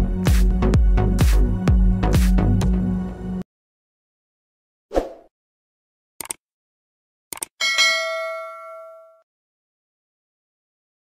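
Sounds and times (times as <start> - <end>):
notification bell ding: 7.6 - 9.2.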